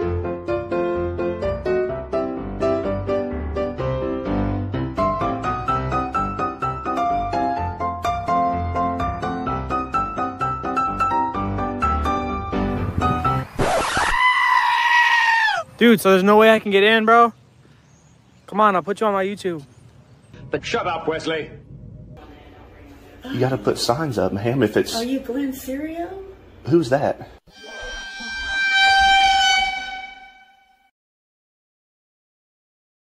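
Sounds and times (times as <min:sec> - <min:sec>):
loud high-pitched scream: 0:13.6 - 0:15.7, 0:27.5 - 0:30.9
held horn-like tone: 0:27.5 - 0:30.9.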